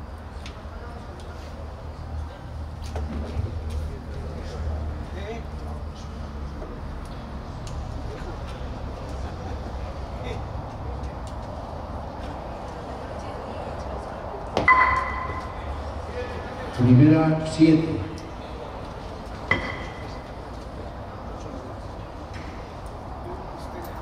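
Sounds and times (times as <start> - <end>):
murmur of spectators: 0.0 - 24.0
ball striking with sharp knock: 14.6 - 15.6.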